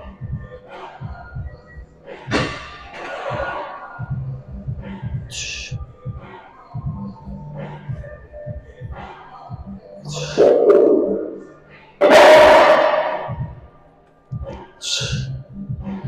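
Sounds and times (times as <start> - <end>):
gym music with thudding bass: 0.0 - 13.7, 14.3 - 16.0
man straining breaths and grunting: 10.1 - 11.4, 12.0 - 13.5, 14.8 - 15.4.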